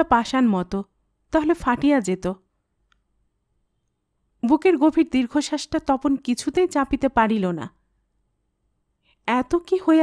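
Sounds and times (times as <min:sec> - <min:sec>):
woman narrating: 0:00.0 - 0:02.5, 0:04.4 - 0:07.8, 0:09.2 - 0:10.0.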